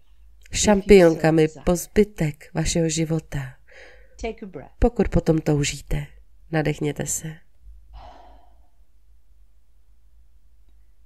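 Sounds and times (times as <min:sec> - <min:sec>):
faint low hum: 0:00.0 - 0:11.0
person breathing deeply: 0:03.7 - 0:04.2, 0:07.9 - 0:08.8.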